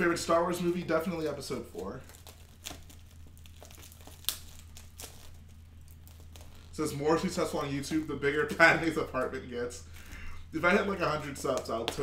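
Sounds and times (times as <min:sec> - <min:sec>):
plastic bag crinkling: 0:00.6 - 0:10.4
sharp plastic crackle: 0:00.6 - 0:10.4.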